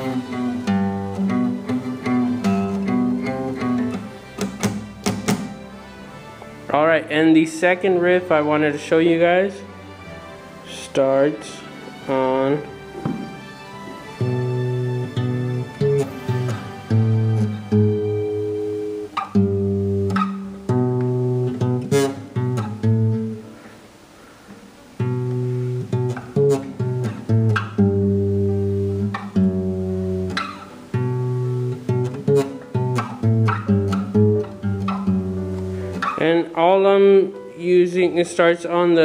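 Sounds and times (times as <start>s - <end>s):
guitar riff single notes: 0.0s - 23.8s, 25.0s - 39.0s.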